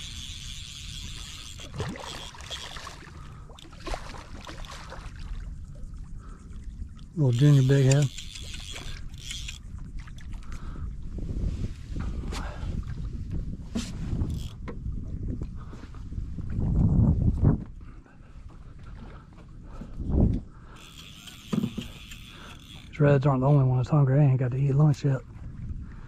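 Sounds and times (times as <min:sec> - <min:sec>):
wind: 0:00.0 - 0:26.0.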